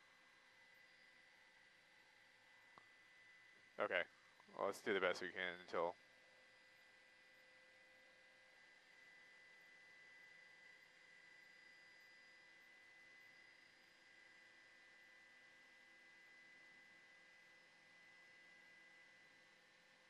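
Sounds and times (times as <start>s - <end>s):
low electronic hum: 0.0s - 11.2s.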